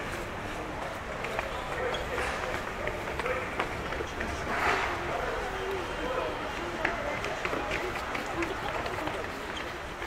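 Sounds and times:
footsteps on stone paving: 0.0 - 4.4, 6.4 - 10.0
people talking: 0.4 - 10.0.

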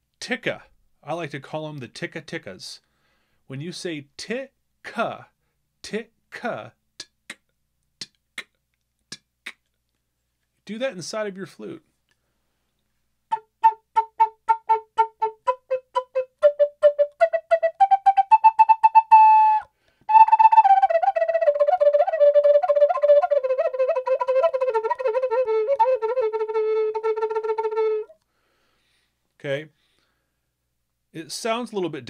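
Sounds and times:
breath: 2.8 - 3.5, 12.1 - 12.8, 19.7 - 20.1, 28.2 - 29.2, 29.8 - 30.5
flute with tongued notes: 13.3 - 28.2.

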